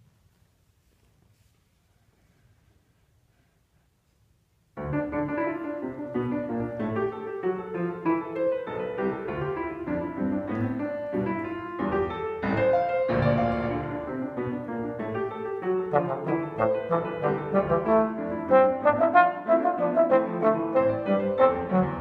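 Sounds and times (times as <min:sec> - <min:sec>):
grand piano playing: 0:04.8 - 0:22.0.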